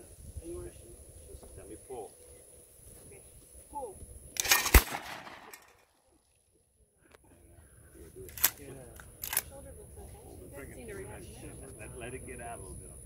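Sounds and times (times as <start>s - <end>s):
shotgun blast: 4.4s - 5.8s
sharp cracks: 4.4s - 5.9s.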